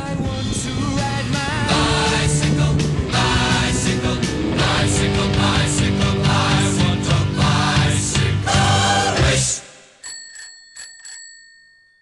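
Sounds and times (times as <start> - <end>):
rock music with a beat: 0.0 - 9.6
bicycle bell ringing: 10.0 - 12.0.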